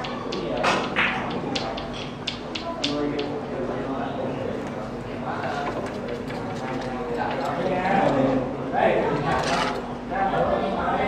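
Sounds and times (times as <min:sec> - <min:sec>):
billiard balls clicking: 0:00.0 - 0:03.7
room noise: 0:00.0 - 0:11.0.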